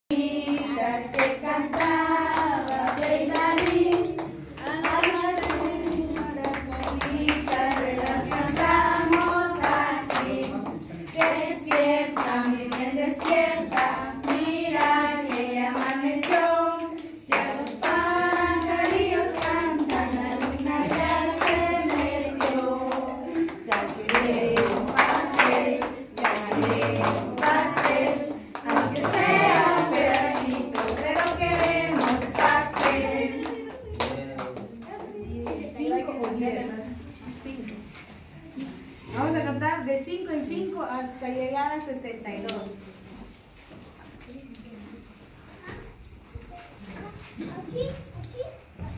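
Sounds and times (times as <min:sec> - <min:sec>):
women singing together: 0:00.1 - 0:37.7
hand clapping: 0:00.4 - 0:36.4.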